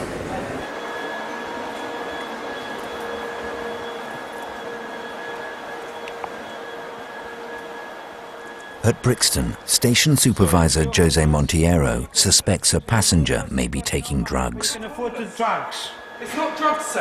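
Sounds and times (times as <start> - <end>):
train mechanical drone: 0.0 - 17.0
thin whining tones: 0.5 - 12.3, 14.3 - 17.0.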